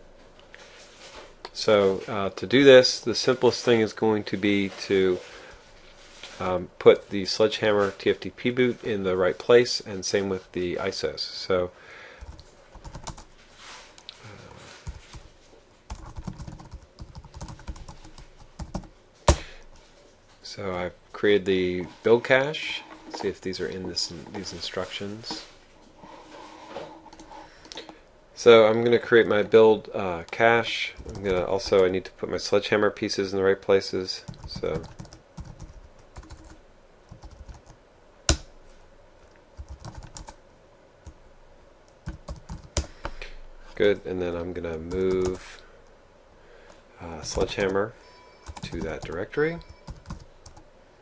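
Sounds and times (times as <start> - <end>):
computer keyboard typing: 12.2 - 13.3, 15.9 - 18.9, 31.0 - 31.8, 34.3 - 38.4, 39.6 - 40.4, 42.0 - 42.9, 47.3 - 47.8, 48.4 - 50.6.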